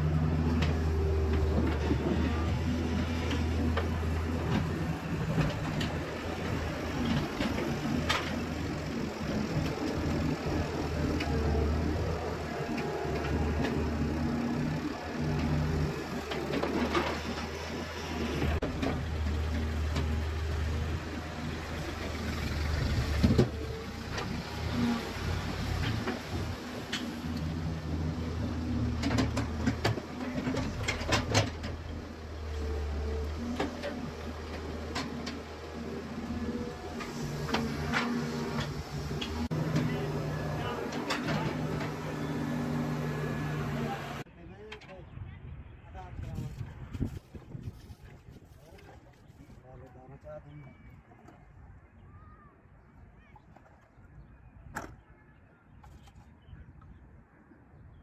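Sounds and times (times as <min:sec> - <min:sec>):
excavator diesel engine under load: 0:00.0 - 0:44.3.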